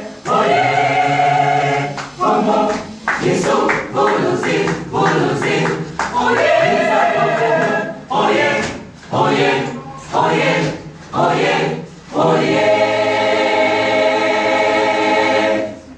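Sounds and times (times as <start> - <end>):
church choir singing: 0.0 - 15.9.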